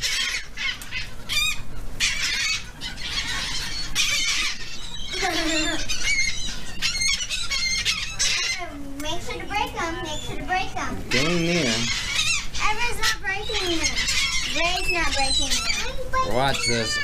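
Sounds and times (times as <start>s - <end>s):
gulls squawking: 0.0s - 17.0s.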